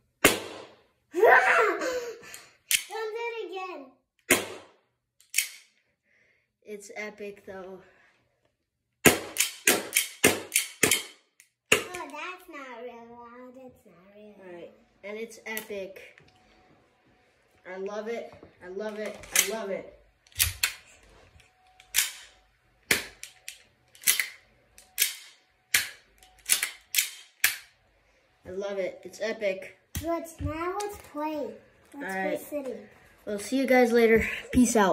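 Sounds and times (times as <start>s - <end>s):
airsoft pistol shots: 4.3s - 4.8s, 9.0s - 11.9s.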